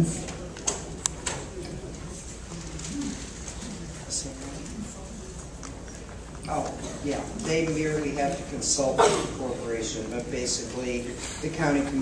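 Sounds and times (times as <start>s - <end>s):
low murmuring voice: 0.0s - 12.0s.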